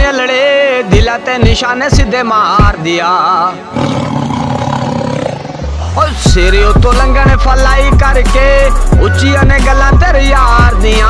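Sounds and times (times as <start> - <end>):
long rough roar: 3.7 - 6.0.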